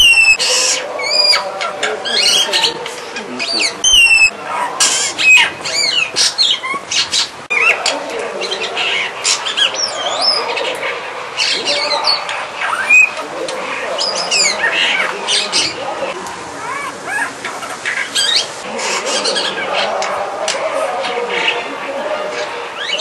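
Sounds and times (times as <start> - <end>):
starling singing: 0.0 - 23.0.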